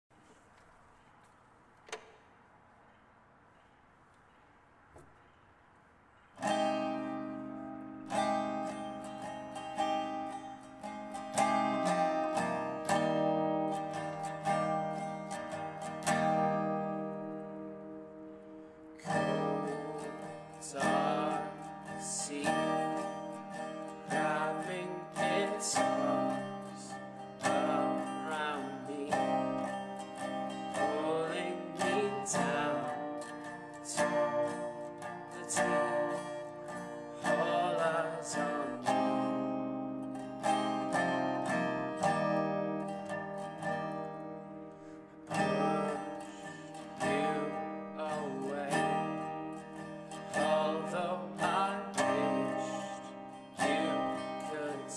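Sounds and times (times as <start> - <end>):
resonator guitar strumming: 0.2 - 54.9
man singing: 19.0 - 39.6, 40.4 - 43.0, 45.3 - 49.3, 50.1 - 54.9.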